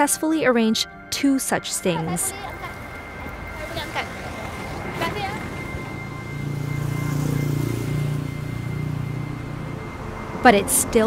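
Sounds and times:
vehicle engine idling: 1.9s - 11.0s.

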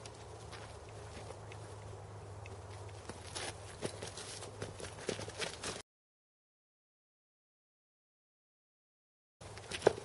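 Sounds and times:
footsteps on gravel: 0.0s - 1.9s, 2.6s - 5.8s.

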